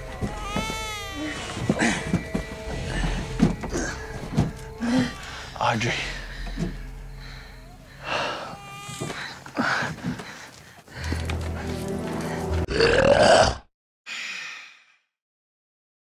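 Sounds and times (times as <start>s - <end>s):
film music with voices: 0.0s - 13.1s.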